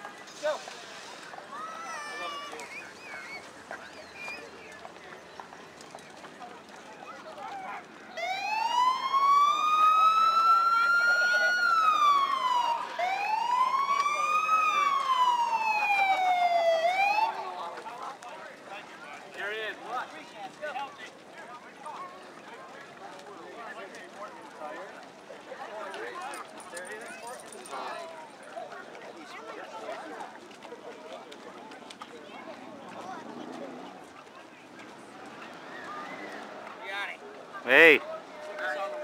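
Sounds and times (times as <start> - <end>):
faint crowd chatter: 0.0 - 39.0
siren wailing: 8.2 - 17.4.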